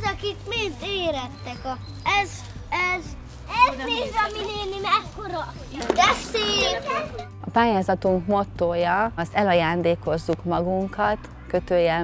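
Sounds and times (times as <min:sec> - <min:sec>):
children talking and calling out: 0:00.0 - 0:07.4.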